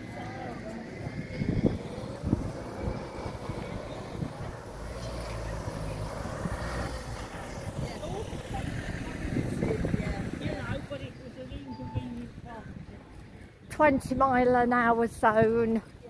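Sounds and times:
engine rumbling: 0:00.0 - 0:13.5
street ambience: 0:00.0 - 0:16.0.

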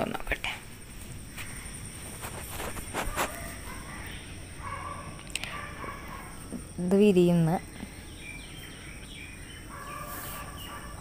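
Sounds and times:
faint birds chirping: 0:00.0 - 0:11.0.

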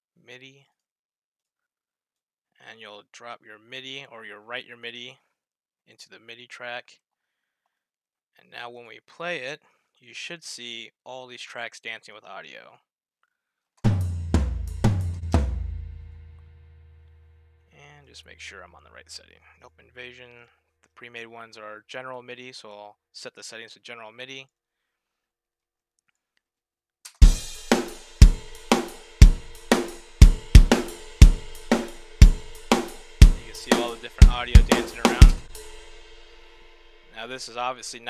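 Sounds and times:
heavy drum kit hits: 0:13.9 - 0:17.4, 0:27.2 - 0:37.2
cymbals ringing: 0:27.2 - 0:37.2.

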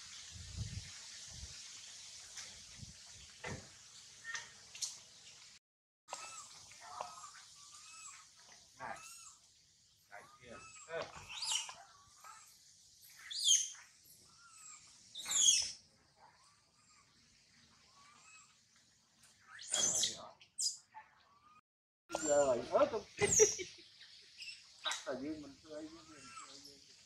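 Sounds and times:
animal shrill cries: 0:06.1 - 0:08.2, 0:08.8 - 0:09.4, 0:10.1 - 0:12.5, 0:13.2 - 0:15.7, 0:25.8 - 0:26.6
animal chirping calls: 0:06.1 - 0:09.4, 0:10.1 - 0:12.5, 0:13.1 - 0:17.1, 0:17.9 - 0:18.5, 0:19.4 - 0:22.6, 0:25.8 - 0:26.8
steady high hiss: 0:22.1 - 0:27.0.

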